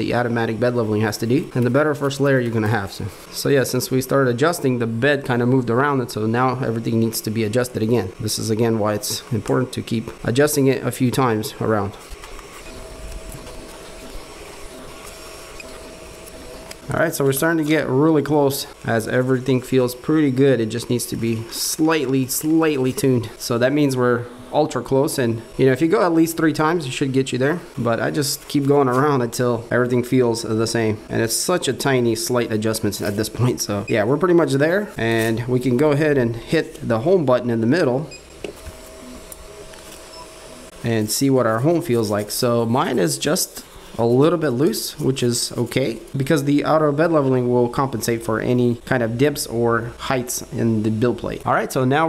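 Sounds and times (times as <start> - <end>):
faint steady whine: 0.0 - 52.0
three d printer humming: 0.0 - 52.0.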